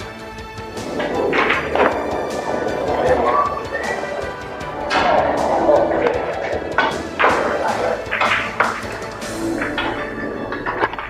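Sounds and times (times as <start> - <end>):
background music with percussion: 0.0 - 11.0.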